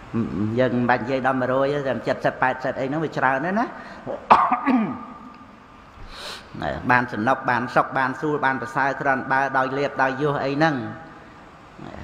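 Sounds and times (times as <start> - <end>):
man speaking: 0.0 - 5.3, 6.5 - 11.1, 11.8 - 12.0
man coughing: 4.1 - 5.3.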